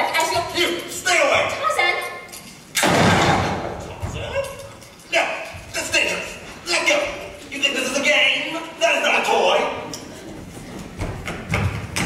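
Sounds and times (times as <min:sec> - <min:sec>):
rifle shot: 0:02.8 - 0:03.7.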